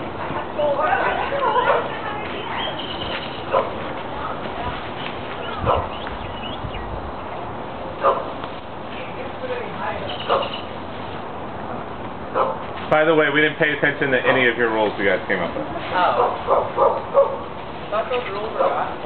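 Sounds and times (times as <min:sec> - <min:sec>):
people talking and calling out: 0:00.0 - 0:10.9.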